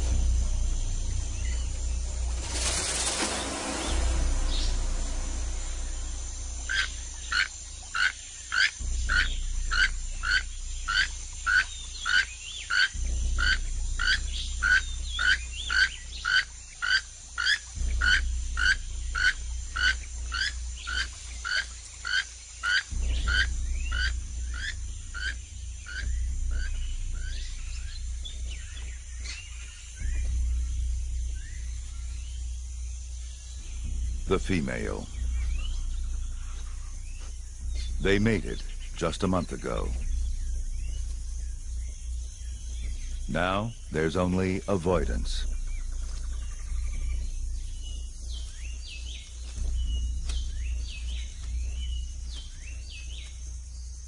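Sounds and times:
low steady rumble: 0:00.0 - 0:54.0.

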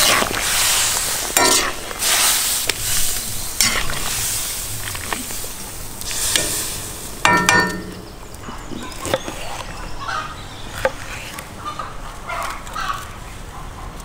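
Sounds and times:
harsh scraping: 0:00.0 - 0:08.2
meat sizzling in a pot: 0:00.0 - 0:08.2
metal skimmer stirring meat: 0:00.0 - 0:08.2.

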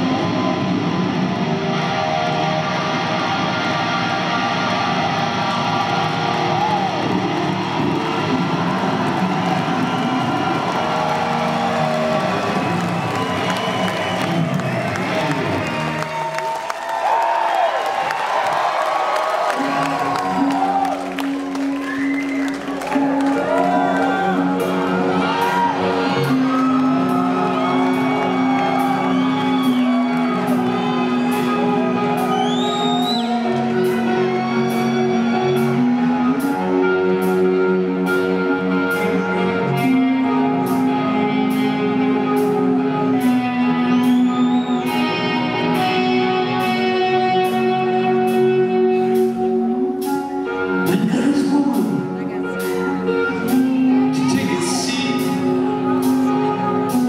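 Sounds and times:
audience cheering: 0:00.0 - 0:36.6
rock band playing: 0:00.0 - 0:57.0
held electric guitar notes: 0:19.5 - 0:57.0.

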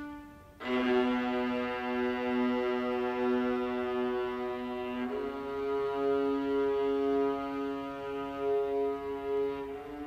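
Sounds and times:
string orchestra sustained chords: 0:00.0 - 0:10.0.

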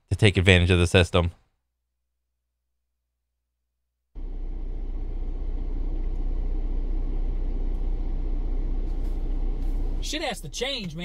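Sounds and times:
low rumble and hiss in car cabin: 0:04.2 - 0:11.0.

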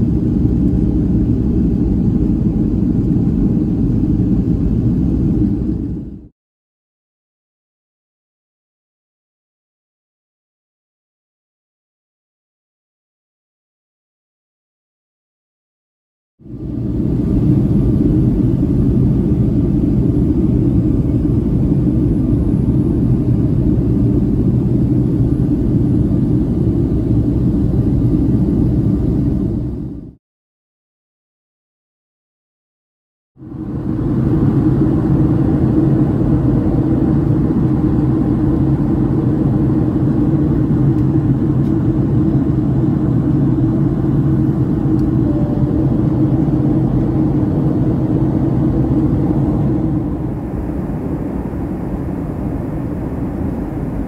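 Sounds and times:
jet engines low rumble: 0:00.0 - 0:06.3, 0:16.4 - 0:30.2, 0:33.4 - 0:54.0
rushing air in cabin: 0:00.0 - 0:06.3, 0:16.4 - 0:30.2, 0:33.4 - 0:54.0.

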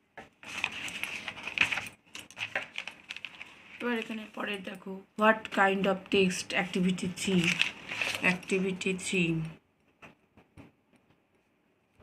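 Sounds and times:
paper pages turning: 0:00.3 - 0:04.6, 0:06.7 - 0:09.0
person speaking: 0:03.7 - 0:09.6.

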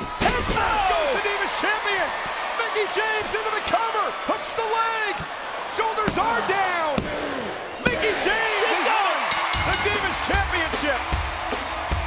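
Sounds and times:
crowd shouting and yelling: 0:00.0 - 0:12.0.

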